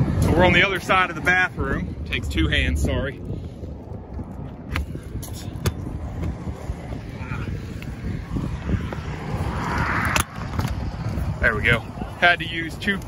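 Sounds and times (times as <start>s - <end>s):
wind rumble: 0.0s - 13.0s.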